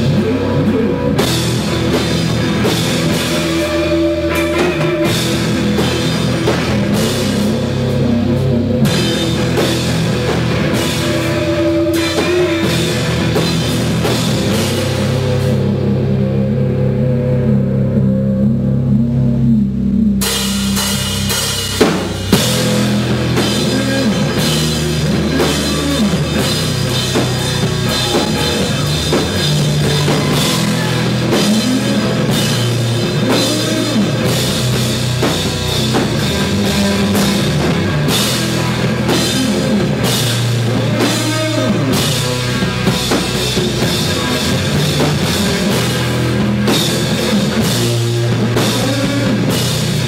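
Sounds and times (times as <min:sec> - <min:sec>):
drum kit with crashing cymbals: 0:00.0 - 0:16.0, 0:20.2 - 0:50.0
bass and guitar sustained notes: 0:00.0 - 0:50.0.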